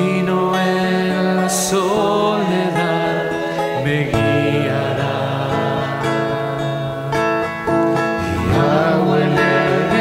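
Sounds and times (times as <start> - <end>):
man singing: 0.0 - 7.2, 8.2 - 10.0
acoustic guitar: 0.0 - 10.0.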